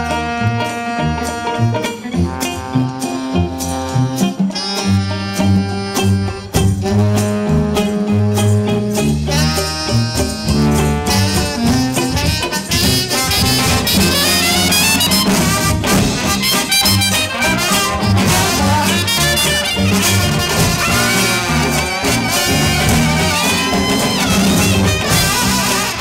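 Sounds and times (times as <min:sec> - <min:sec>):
soprano saxophone: 0:00.0 - 0:15.8
percussion: 0:00.0 - 0:26.0
sousaphone bass line: 0:00.0 - 0:26.0
trombone: 0:00.0 - 0:26.0.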